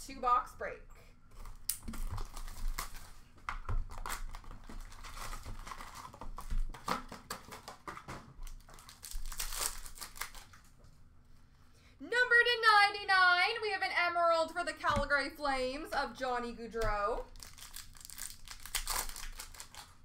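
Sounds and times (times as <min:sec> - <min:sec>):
packaging crinkling and tearing: 0:01.3 - 0:10.8, 0:17.2 - 0:20.0.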